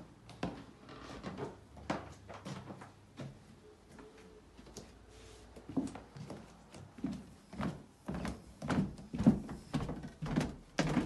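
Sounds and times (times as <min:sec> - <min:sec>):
footsteps on carpeted stairs: 0:00.3 - 0:11.0.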